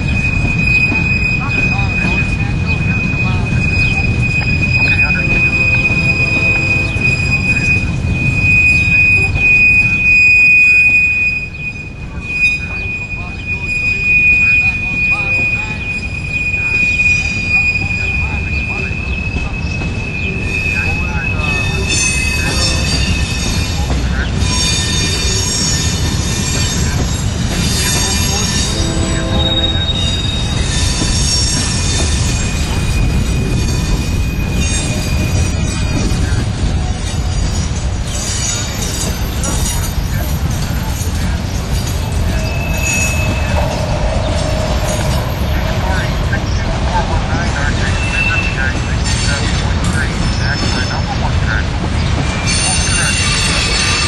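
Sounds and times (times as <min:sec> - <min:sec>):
high wheel squeal: 0:00.0 - 0:51.2, 0:52.0 - 0:54.0
steel wheels rumbling on rail: 0:00.0 - 0:54.0.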